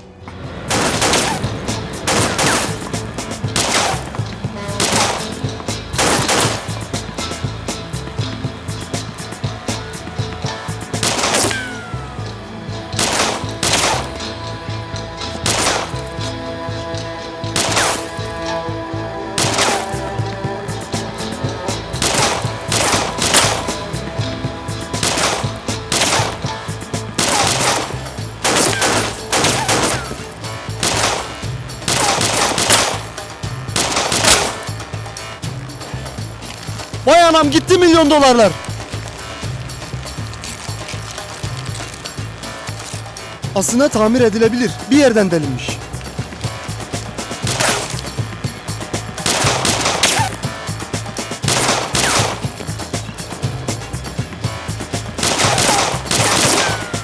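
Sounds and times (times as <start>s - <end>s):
gunshots: 0.6s - 7.3s, 10.6s - 11.9s, 13.0s - 14.2s, 15.4s - 16.1s, 17.6s - 18.3s, 19.4s - 20.2s, 22.0s - 24.0s, 24.9s - 35.2s, 46.6s - 53.1s, 55.1s - 57.0s.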